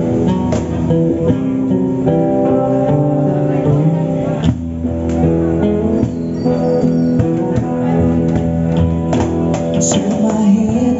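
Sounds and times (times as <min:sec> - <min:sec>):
guitar chords ringing: 0:00.0 - 0:10.9.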